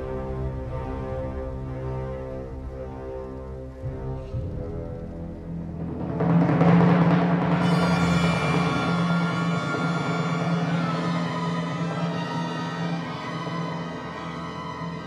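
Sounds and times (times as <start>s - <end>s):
timpani roll: 0.0s - 15.0s.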